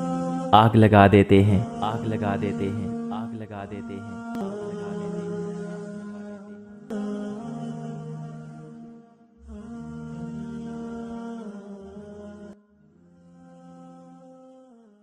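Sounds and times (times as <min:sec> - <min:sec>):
droning chord music: 0:00.6 - 0:05.7.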